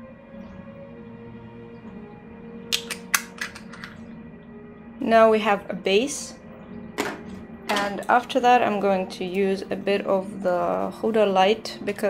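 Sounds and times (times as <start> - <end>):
soft ambient music: 0.0 - 12.0
makeup containers clicking: 2.7 - 4.0.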